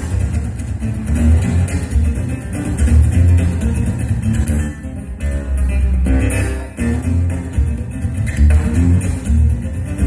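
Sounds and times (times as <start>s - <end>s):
amplified acoustic guitar: 0.0s - 10.0s
deep bass: 0.0s - 10.0s.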